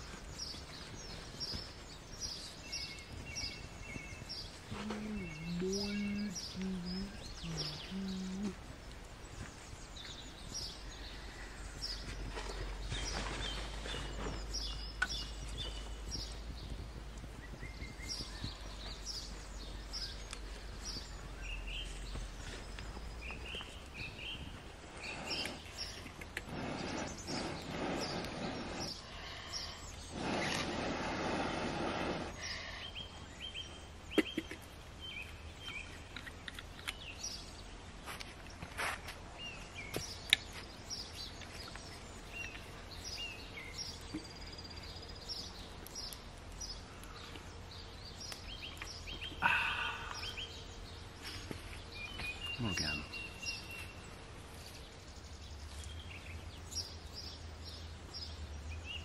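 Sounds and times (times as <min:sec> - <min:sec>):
rustling noise: 0:00.0 - 0:05.4, 0:11.9 - 0:29.1, 0:37.7 - 0:43.0
songbirds chirping: 0:00.0 - 0:59.0.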